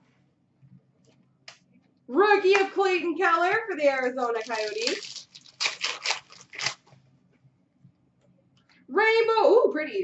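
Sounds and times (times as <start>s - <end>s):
cards and foil wrapper crinkling: 4.2s - 7.0s.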